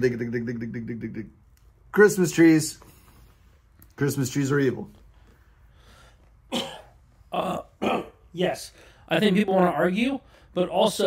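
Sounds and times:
man clearing his throat: 0:06.5 - 0:08.3.

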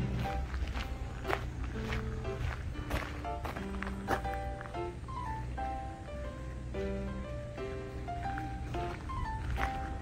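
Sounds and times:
footsteps crunching on gravel: 0:00.0 - 0:06.3, 0:07.9 - 0:10.0
light plucked background music: 0:00.0 - 0:10.0.

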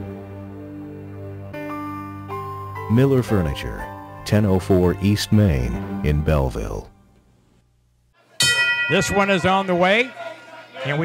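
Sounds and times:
ring bell ringing: 0:08.4 - 0:11.0.

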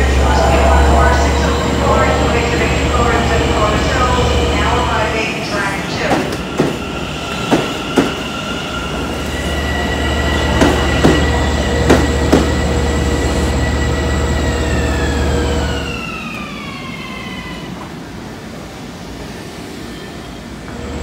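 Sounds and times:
subway train motor whine: 0:00.0 - 0:21.0.

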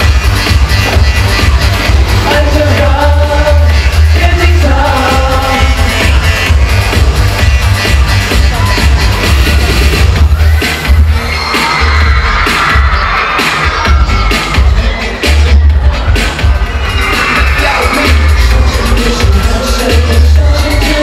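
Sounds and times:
dance-pop over sound system: 0:00.0 - 0:21.0
audience cheering: 0:08.5 - 0:21.0.

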